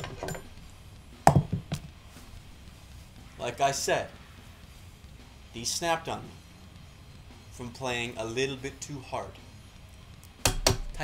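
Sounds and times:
drum pedal knocking on wooden table: 1.2 - 1.9.

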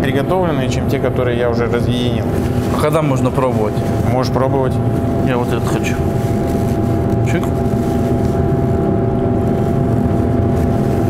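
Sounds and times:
extractor hood fan droning: 0.0 - 11.0.

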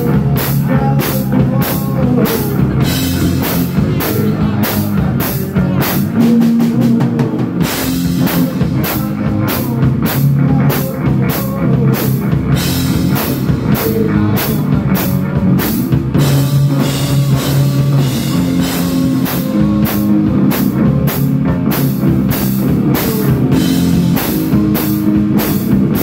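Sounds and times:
drum kit beat: 0.0 - 26.0
electric guitar riffing: 0.0 - 26.0.

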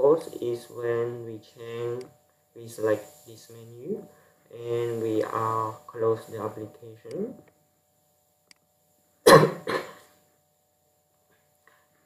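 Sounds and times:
person coughing: 9.2 - 10.2.

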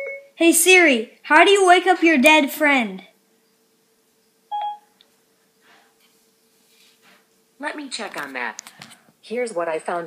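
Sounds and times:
short electronic beep: 4.5 - 4.8.

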